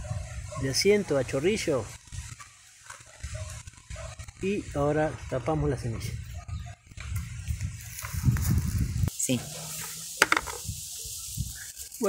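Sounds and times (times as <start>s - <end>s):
low rumbling on microphone: 3.2s - 9.1s.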